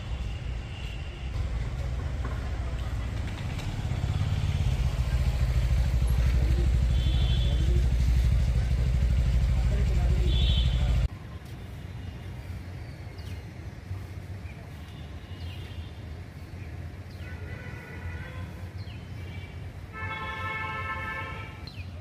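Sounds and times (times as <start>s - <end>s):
outdoor ambience: 0.0s - 22.0s
vehicle engine running: 1.4s - 11.1s.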